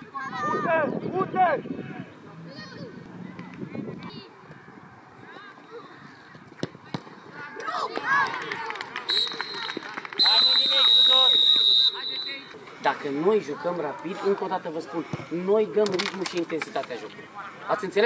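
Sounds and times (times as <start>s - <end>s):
long whistle blast: 10.2s - 12.4s.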